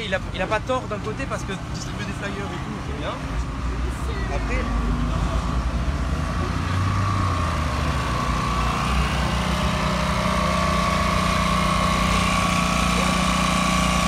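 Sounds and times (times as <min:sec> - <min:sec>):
small engine humming: 0:00.8 - 0:14.0.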